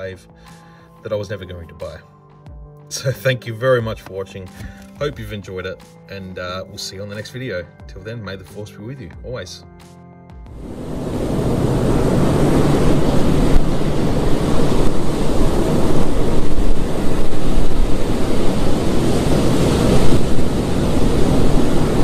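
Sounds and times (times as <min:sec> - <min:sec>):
loud rushing noise: 0:10.5 - 0:22.0.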